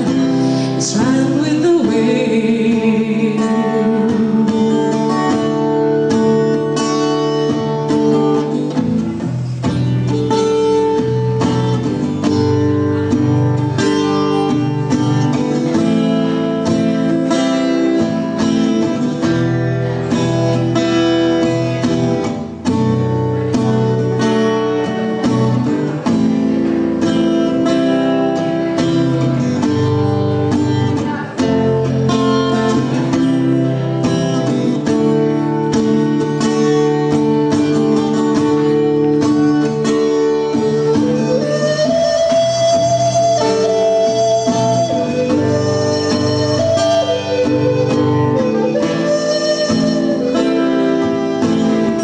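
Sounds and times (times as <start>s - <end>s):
acoustic guitar strumming: 0.0s - 52.0s.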